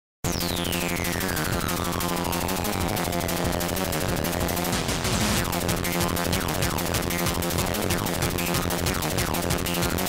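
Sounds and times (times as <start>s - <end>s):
chiptune music: 0.2s - 10.0s.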